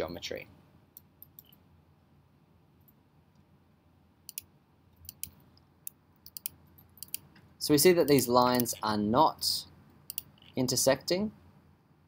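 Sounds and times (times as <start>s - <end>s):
low room hiss: 0.0s - 12.0s
computer mouse clicks: 1.0s - 1.6s, 4.3s - 8.8s, 10.1s - 10.6s.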